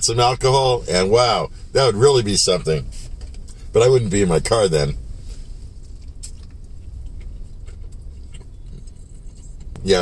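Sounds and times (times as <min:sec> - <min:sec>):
low hum inside car: 0:00.0 - 0:10.0
faint chewing: 0:05.4 - 0:10.0.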